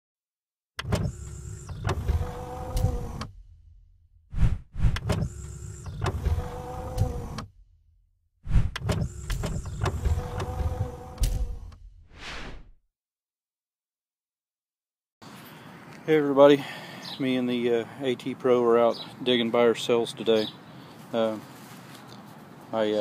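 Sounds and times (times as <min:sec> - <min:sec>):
sharp clicks: 0:00.8 - 0:03.3, 0:08.6 - 0:11.8
mechanical whirring and clunking: 0:00.8 - 0:12.8.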